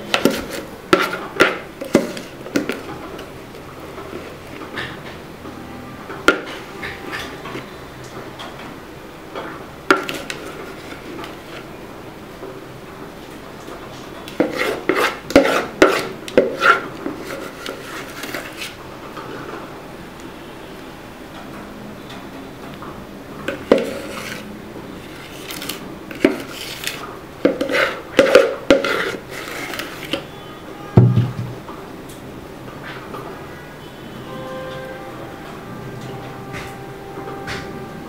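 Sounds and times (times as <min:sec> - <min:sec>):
spoon scraping batter from bowl: 0:00.0 - 0:02.9, 0:14.3 - 0:18.8, 0:23.5 - 0:30.3.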